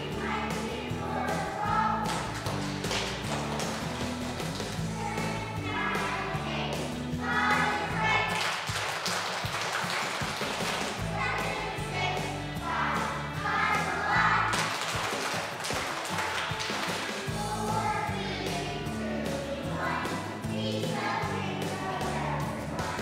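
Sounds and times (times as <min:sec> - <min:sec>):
children's choir singing: 0:00.0 - 0:03.3, 0:04.7 - 0:23.0
instrumental accompaniment: 0:00.0 - 0:23.0.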